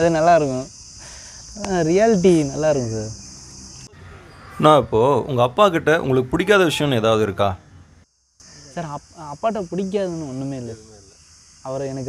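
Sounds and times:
high-pitched insect chorus: 0.0 - 12.0
man talking: 4.6 - 7.6.

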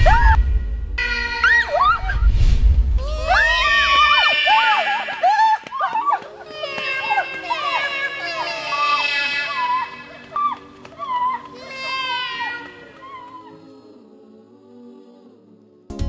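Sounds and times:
background music: 0.0 - 16.0
women yelling: 3.0 - 13.6.

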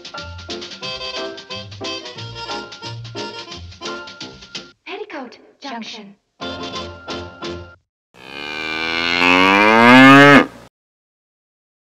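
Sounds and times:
cow mooing: 8.2 - 10.6.

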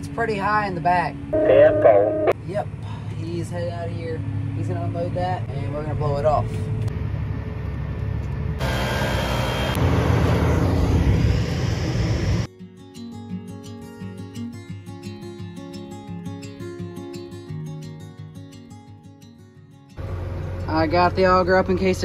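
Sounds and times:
loud machinery noise: 3.9 - 12.5, 20.0 - 22.0.

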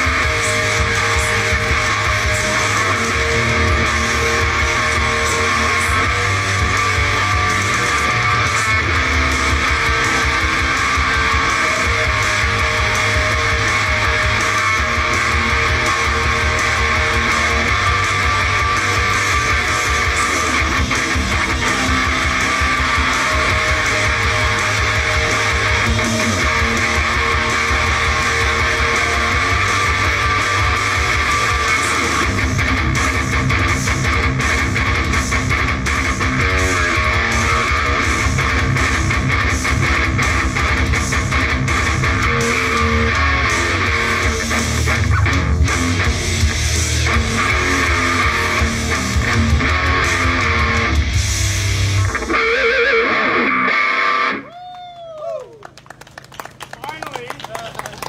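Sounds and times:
distorted heavy rock band: 0.0 - 54.5.

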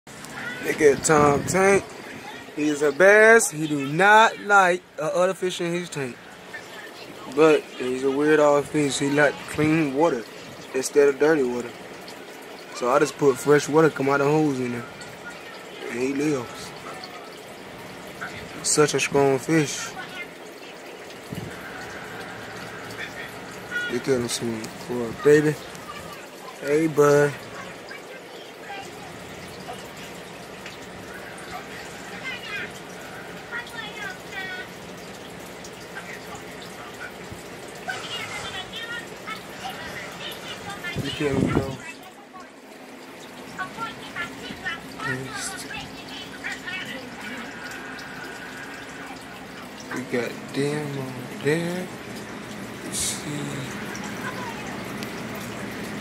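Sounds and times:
aquarium water bubbling: 0.1 - 56.0
faint voices: 0.1 - 56.0.

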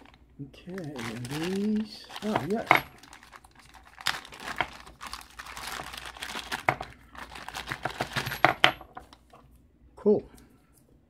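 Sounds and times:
plastic bag crinkling: 0.0 - 9.3.

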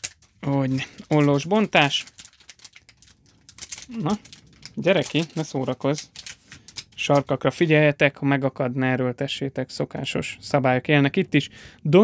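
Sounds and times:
foil wrapper crinkling: 0.0 - 7.7.

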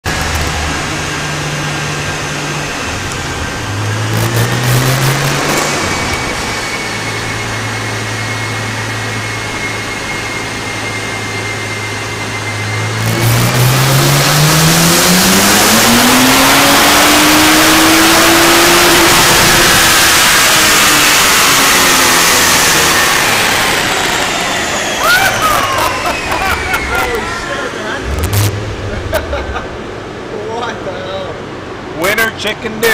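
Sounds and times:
car engine revving: 0.0 - 9.4, 12.4 - 30.5
loud rushing noise: 2.5 - 7.8, 23.3 - 30.8
thin steady whine: 23.3 - 31.9.

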